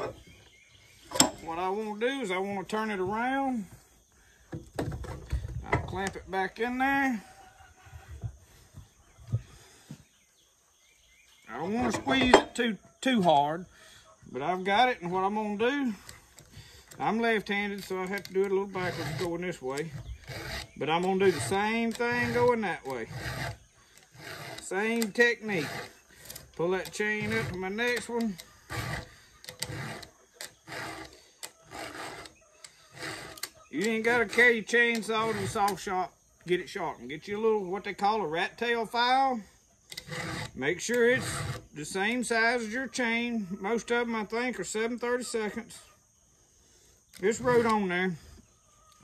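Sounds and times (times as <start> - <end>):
file rasping on chain teeth: 17.3 - 35.8, 39.9 - 41.8, 47.2 - 47.8.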